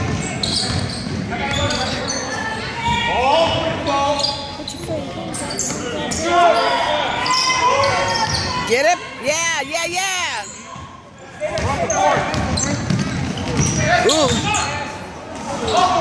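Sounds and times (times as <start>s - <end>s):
sneakers squeaking: 0.0s - 9.0s, 9.8s - 16.0s
spectators chatting: 0.0s - 16.0s
basketball dribbling: 11.6s - 13.8s.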